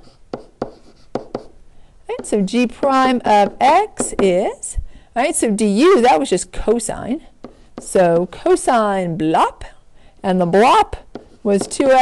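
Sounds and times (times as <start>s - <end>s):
stylus tapping and scratching: 0.0s - 4.5s, 7.4s - 8.3s, 10.7s - 12.0s.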